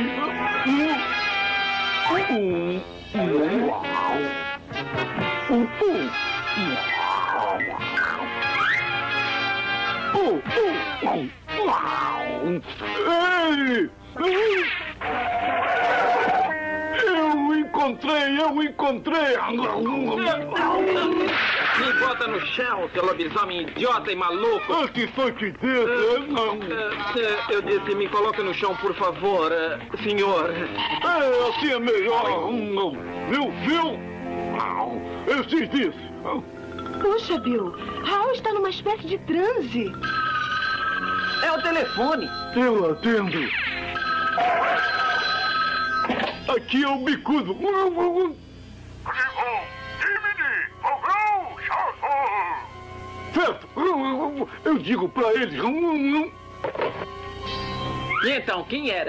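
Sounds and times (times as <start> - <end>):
cartoon character yelling: 20.0 - 21.4, 49.1 - 52.7
cartoon telephone ringing: 36.6 - 38.3, 39.8 - 46.5.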